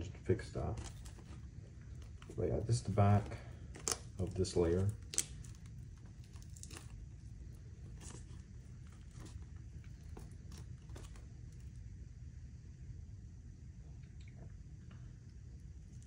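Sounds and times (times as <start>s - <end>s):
low steady hum: 0.0s - 16.0s
coating crinkling and crackling: 0.1s - 11.9s.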